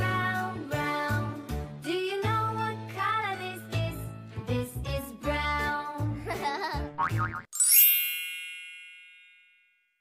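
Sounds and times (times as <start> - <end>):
children's background music: 0.0 - 8.0
bright chime ringing: 7.6 - 10.0.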